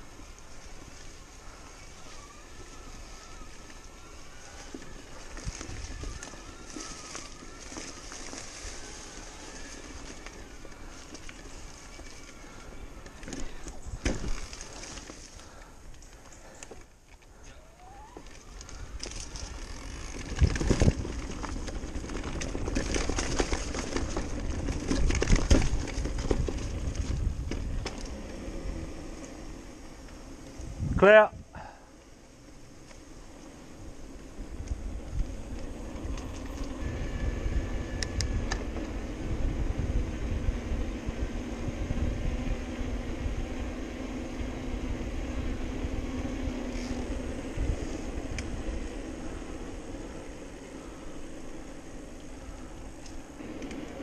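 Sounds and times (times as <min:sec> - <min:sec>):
bike knocking and rattling: 0:00.0 - 0:17.3, 0:17.9 - 0:54.0
bike tyres rolling over mud: 0:00.0 - 0:54.0.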